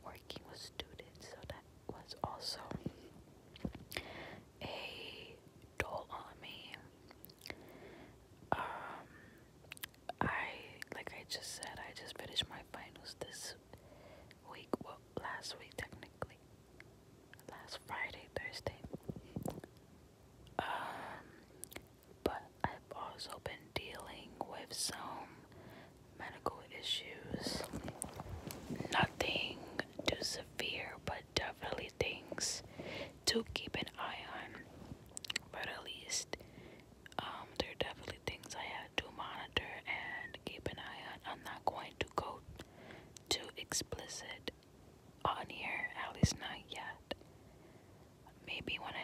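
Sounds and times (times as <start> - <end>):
close whispering: 0.0 - 3.1, 4.6 - 6.9, 9.8 - 13.6, 14.4 - 16.4, 17.4 - 19.6, 20.6 - 36.4, 37.1 - 42.5, 43.3 - 44.5, 45.3 - 47.2, 48.3 - 49.0.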